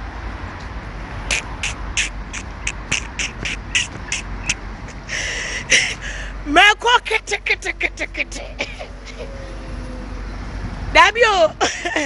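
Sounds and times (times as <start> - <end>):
passing vehicle rumble: 0.0 - 12.0.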